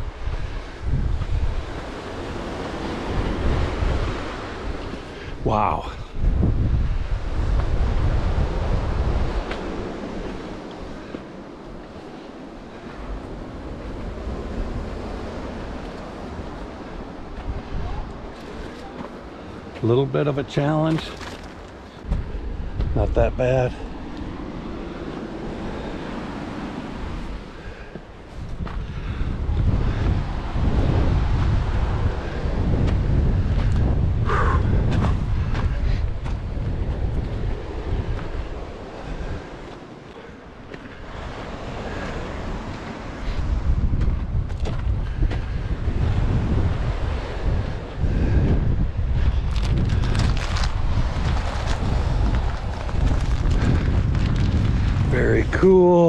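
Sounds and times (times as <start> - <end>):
wind buffeting microphone: 0.0 - 56.0.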